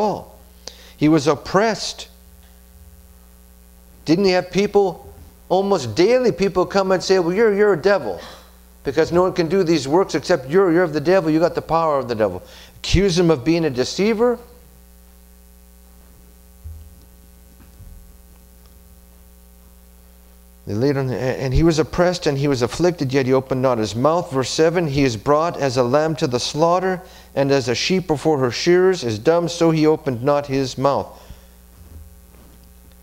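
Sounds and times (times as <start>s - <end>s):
faint electrical mains hum: 0.0s - 33.0s
soft low bumps: 16.0s - 18.6s, 31.7s - 32.7s.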